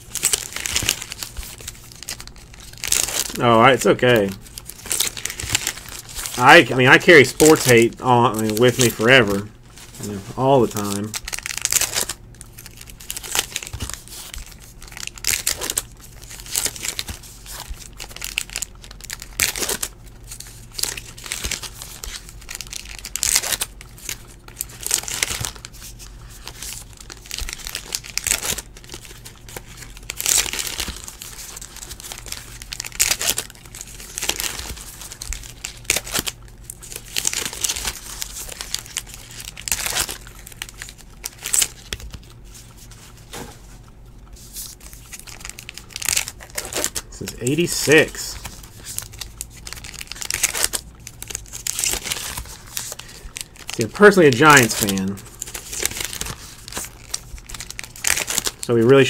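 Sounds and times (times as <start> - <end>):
card wrappers tearing and crinkling: 0.0 - 59.0
cards being handled: 0.2 - 12.2, 19.4 - 59.0.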